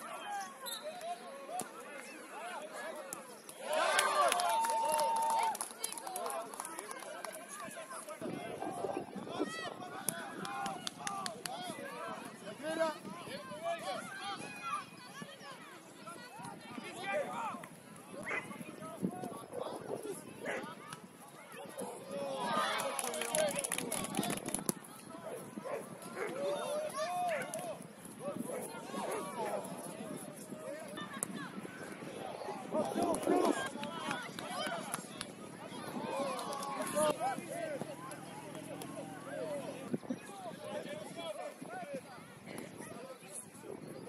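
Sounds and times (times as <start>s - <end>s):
voices shouting and calling out: 0.0s - 44.0s.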